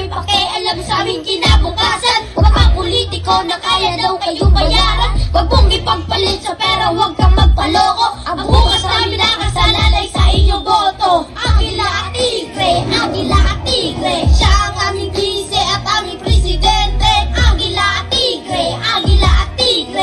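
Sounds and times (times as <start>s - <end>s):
heavy bass beat: 0.0s - 19.8s
children rapping: 0.0s - 20.0s
hip hop backing track: 0.0s - 20.0s
children singing: 5.6s - 20.0s.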